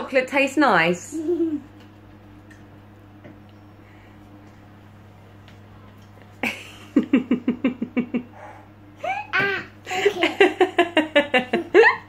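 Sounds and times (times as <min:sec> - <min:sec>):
steady low room hum: 0:00.0 - 0:12.0.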